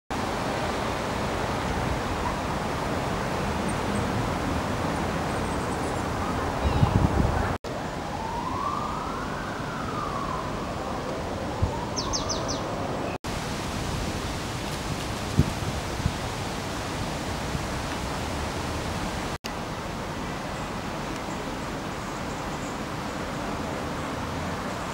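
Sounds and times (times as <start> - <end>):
rushing outdoor noise: 0.1 - 24.9
siren wailing: 8.0 - 12.6.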